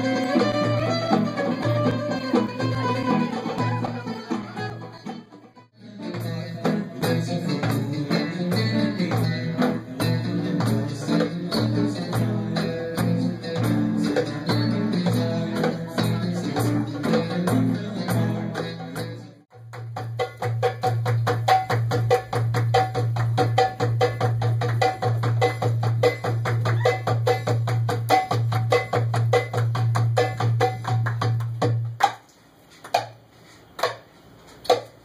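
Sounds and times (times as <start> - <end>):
goblet drums playing fast: 0.0 - 5.5, 6.1 - 32.2.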